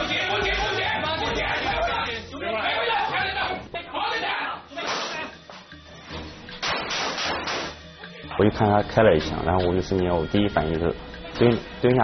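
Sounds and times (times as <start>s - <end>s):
men talking and calling out: 0.0s - 5.4s
background music: 0.0s - 12.0s.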